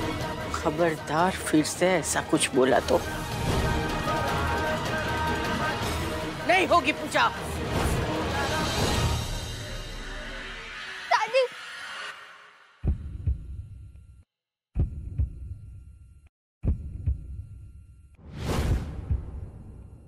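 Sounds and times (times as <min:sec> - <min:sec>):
heartbeat-like throbbing pulse: 0:12.8 - 0:14.2, 0:14.8 - 0:16.0, 0:16.6 - 0:18.0.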